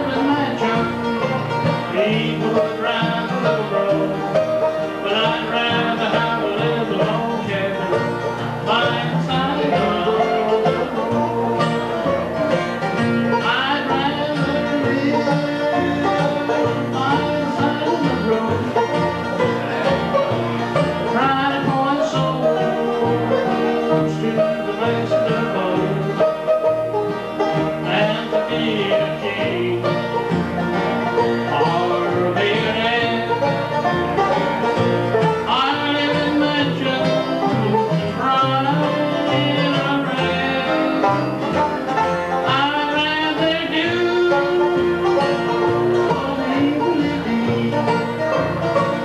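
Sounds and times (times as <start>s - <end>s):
man singing lead: 0.0s - 12.1s, 13.3s - 26.7s, 27.6s - 30.4s, 31.1s - 34.3s, 35.2s - 41.5s, 42.2s - 49.0s
picked banjo: 0.0s - 49.0s
strummed acoustic guitar: 0.0s - 49.0s
upright bass: 0.0s - 49.0s.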